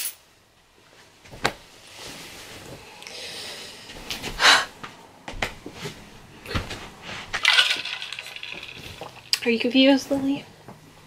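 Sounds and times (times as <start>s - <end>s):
rustling: 0.8s - 3.0s.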